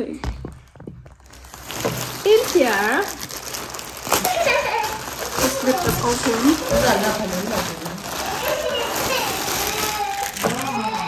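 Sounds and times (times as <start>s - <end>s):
plastic bag crinkling: 0.7s - 11.0s.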